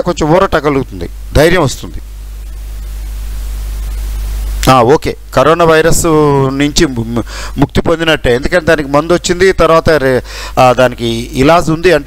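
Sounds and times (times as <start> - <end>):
electrical hum and hiss: 0.0 - 12.0.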